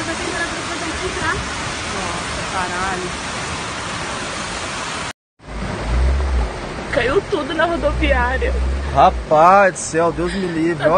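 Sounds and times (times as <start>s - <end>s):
torrential rain and rushing water: 0.0s - 10.9s
low rumble: 5.4s - 10.4s.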